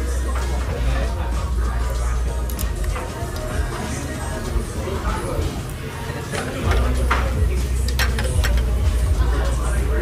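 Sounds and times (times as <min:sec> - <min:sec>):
background music: 0:00.0 - 0:10.0
restaurant noise: 0:00.0 - 0:10.0.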